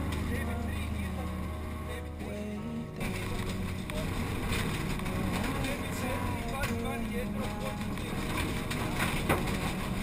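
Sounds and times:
turbocharged car engine working hard: 0.0s - 10.0s.

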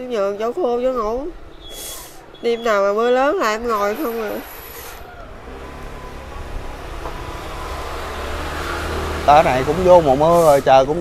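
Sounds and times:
vehicle engine approaching: 4.8s - 11.0s.

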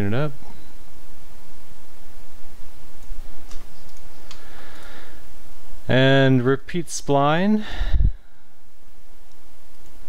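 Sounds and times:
steady background hiss: 0.0s - 10.0s
computer mouse clicks: 3.0s - 5.0s.

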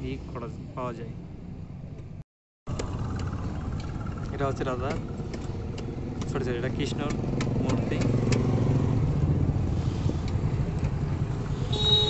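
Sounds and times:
vehicle engine rumbling: 0.0s - 12.0s.

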